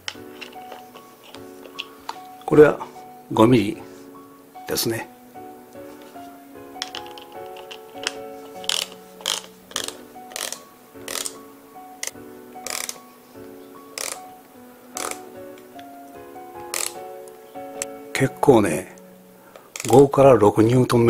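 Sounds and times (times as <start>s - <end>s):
background music: 0.0s - 21.0s
ratchet torque wrench clicking: 8.6s - 11.4s, 12.0s - 13.0s, 14.0s - 14.2s, 16.7s - 17.0s.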